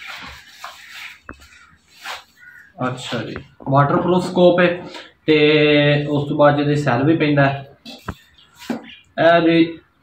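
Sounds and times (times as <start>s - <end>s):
tissue paper crinkling: 0.0s - 3.2s.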